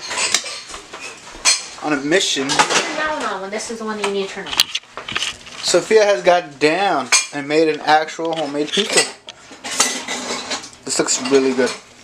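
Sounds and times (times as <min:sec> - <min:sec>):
dishes and cutlery clinking: 0:00.0 - 0:03.1, 0:07.0 - 0:11.9.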